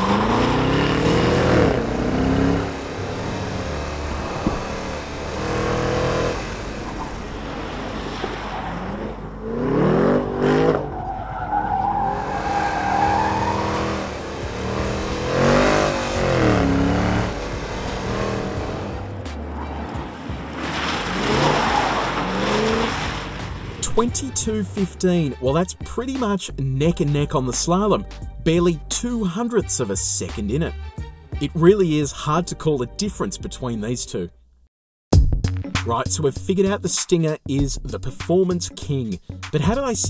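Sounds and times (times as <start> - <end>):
tyres squealing: 0.0 - 9.3, 10.6 - 25.7
car engine revving: 0.0 - 26.3.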